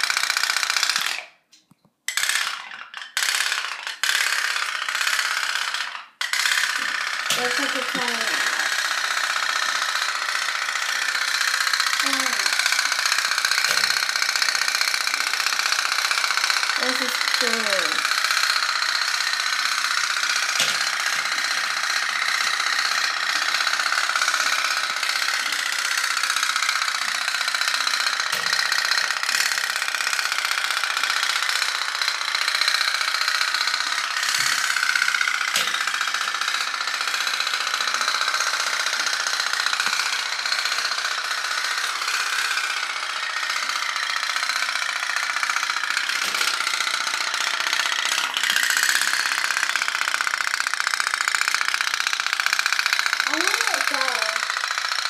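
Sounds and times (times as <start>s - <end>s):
toy steam boat putter: 0.0s - 55.0s.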